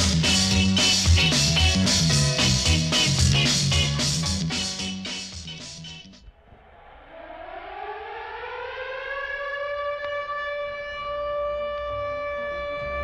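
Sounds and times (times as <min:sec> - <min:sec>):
siren-like rising tone: 0:06.3 - 0:13.0.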